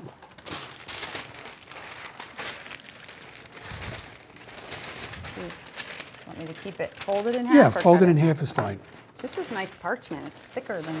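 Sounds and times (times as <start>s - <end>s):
parchment paper crinkling: 0.0s - 11.0s.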